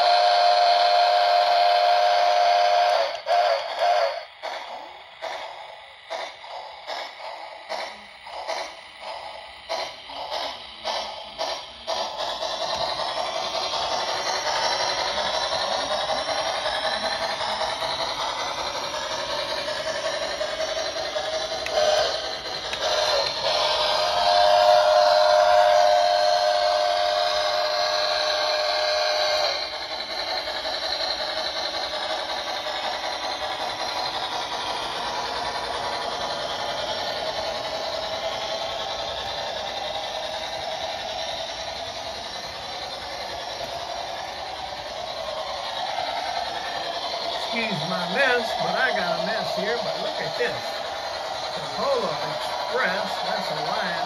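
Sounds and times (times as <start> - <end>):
locomotive electronic sound effects: 0.0 - 54.0
model train wheels clattering: 0.0 - 54.0.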